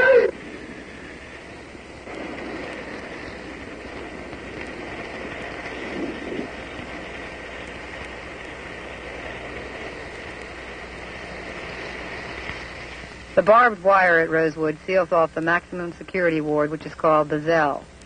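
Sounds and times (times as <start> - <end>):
background hiss and hum: 0.0 - 18.0
faint high whine: 0.0 - 18.0.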